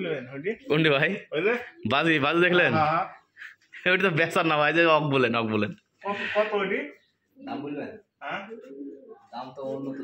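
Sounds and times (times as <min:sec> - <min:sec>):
pigeons cooing: 0:08.2 - 0:10.0.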